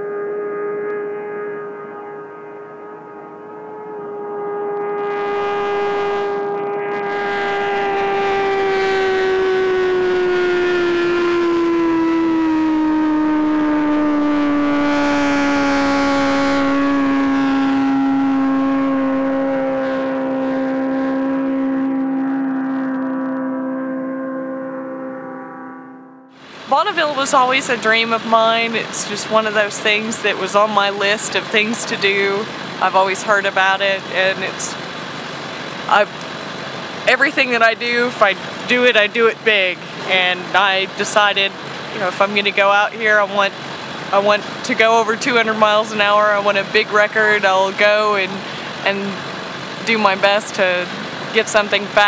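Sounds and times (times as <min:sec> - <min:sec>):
motorcycle engine passing at speed: 0:00.0 - 0:26.4.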